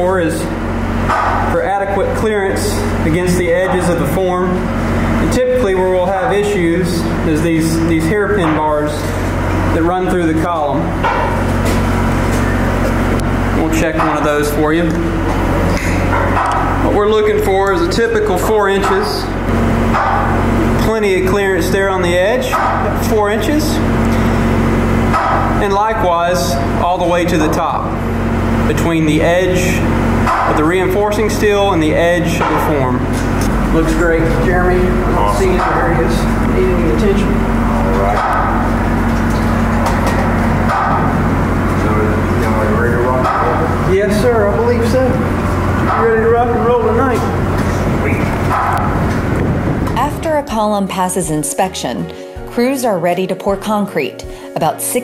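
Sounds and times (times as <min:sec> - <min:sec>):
machine drone: 0:00.0 - 0:50.8.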